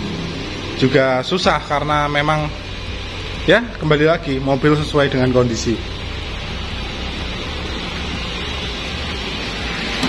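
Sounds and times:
low hum: 0:00.0 - 0:10.0
steady hiss: 0:00.2 - 0:10.0.

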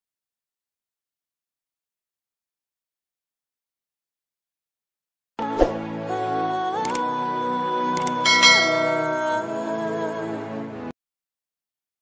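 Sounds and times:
mouse click: 0:06.8 - 0:07.0
bright bell chime: 0:08.2 - 0:09.4
synthesizer chord: 0:08.2 - 0:10.1.

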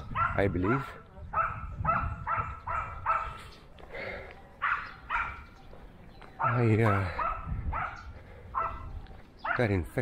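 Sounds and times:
dog barking: 0:00.0 - 0:03.5, 0:04.6 - 0:05.5, 0:06.4 - 0:09.8.

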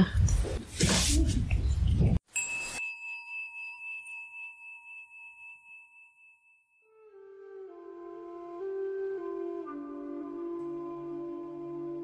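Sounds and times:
bell ringing out: 0:02.3 - 0:06.9.

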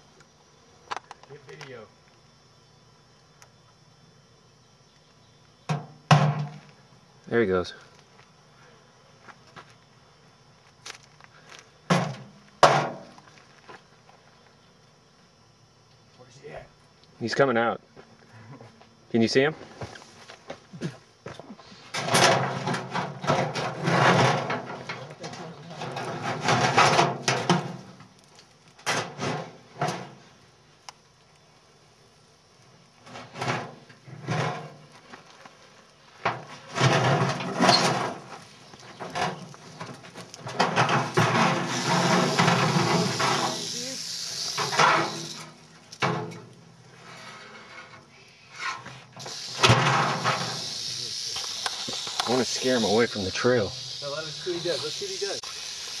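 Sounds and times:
rattlesnake rattling: 0:21.7 - 0:30.6, 0:32.2 - 0:56.0.

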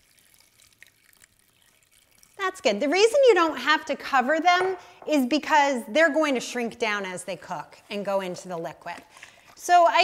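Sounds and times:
tiny water drips: 0:00.0 - 0:03.6, 0:08.5 - 0:10.0
water trickling onto vegetables: 0:00.0 - 0:03.8, 0:08.1 - 0:10.0.

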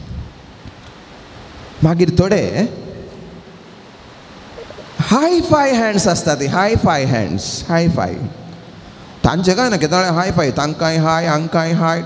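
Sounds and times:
room noise hiss: 0:00.0 - 0:12.0.

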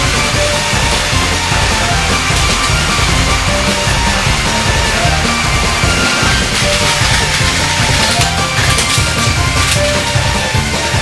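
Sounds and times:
heavy rock music: 0:00.0 - 0:11.0.

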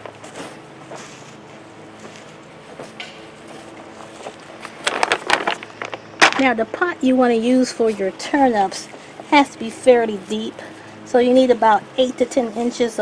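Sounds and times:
crackly scrapes: 0:00.0 - 0:06.5
hand stirring soil rustling: 0:00.0 - 0:06.8.

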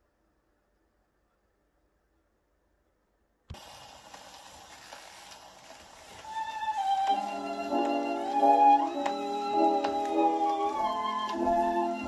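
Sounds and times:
record surface hiss and crackle: 0:00.0 - 0:12.0.

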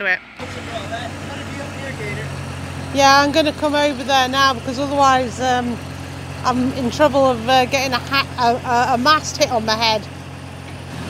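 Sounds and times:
faint voices: 0:00.0 - 0:10.0
hoist engine idling: 0:00.2 - 0:11.0.

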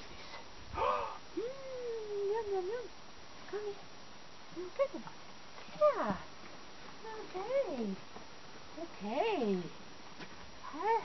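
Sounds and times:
woman cooing: 0:00.8 - 0:02.9.

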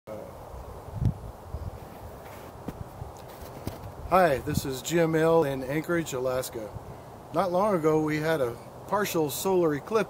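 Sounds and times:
outdoor background noise: 0:00.1 - 0:10.0.

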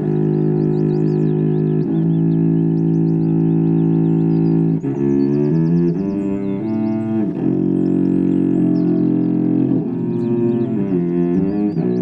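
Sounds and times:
bowed cello chord: 0:00.0 - 0:12.0.

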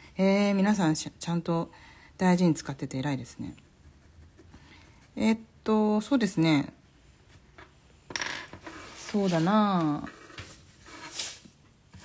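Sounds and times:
pencil scratching paper: 0:03.4 - 0:05.2, 0:08.7 - 0:12.0.

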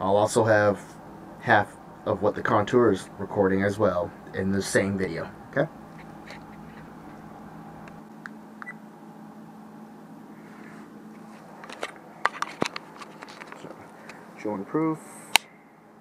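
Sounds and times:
steady low hum: 0:00.0 - 0:16.0
camera and cable handling clicks: 0:11.6 - 0:14.2.

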